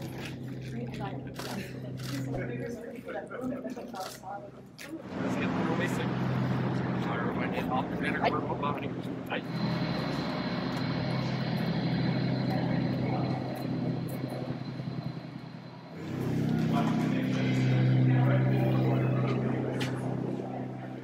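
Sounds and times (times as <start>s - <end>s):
indistinct voices: 0.0s - 21.0s
mechanical drone with low hum: 0.0s - 21.0s
thin high whine: 5.1s - 21.0s.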